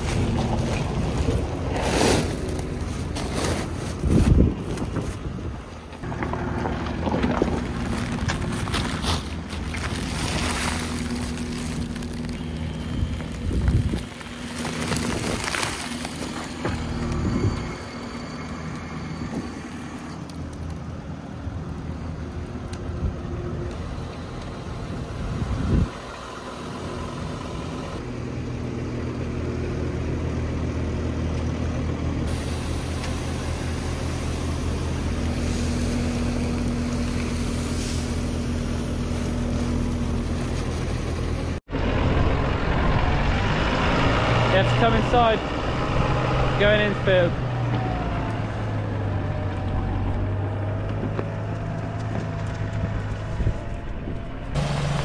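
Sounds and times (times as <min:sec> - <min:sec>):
diesel engines running: 0:00.0 - 0:55.0
tractor engine: 0:00.0 - 0:55.0.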